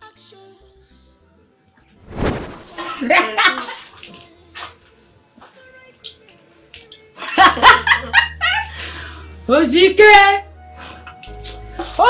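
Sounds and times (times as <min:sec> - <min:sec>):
woman laughing: 0:02.8 - 0:03.9, 0:07.2 - 0:08.8.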